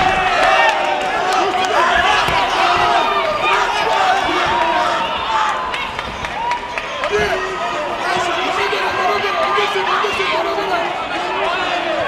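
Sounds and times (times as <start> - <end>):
crowd shouting and cheering: 0.0 - 12.0.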